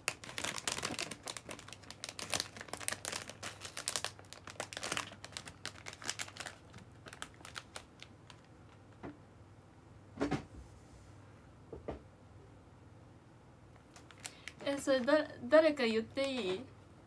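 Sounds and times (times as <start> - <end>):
plastic bag crinkling: 0.0 - 8.9, 13.9 - 16.7.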